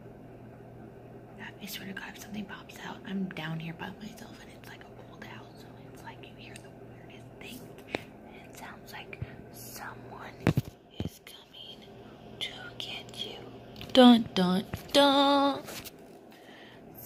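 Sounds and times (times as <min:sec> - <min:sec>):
faint low hum: 0:00.0 - 0:17.0
woman whispering: 0:01.4 - 0:13.6.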